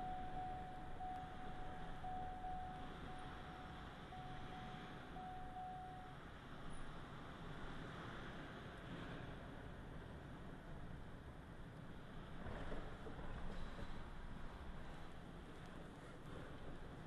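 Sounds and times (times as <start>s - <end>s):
thin beeping tone: 0.0s - 6.3s
car driving rumble and hiss: 0.0s - 17.0s.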